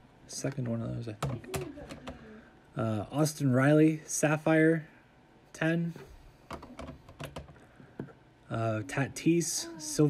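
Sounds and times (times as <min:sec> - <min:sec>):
hard plastic cases clicking: 0:06.5 - 0:08.1.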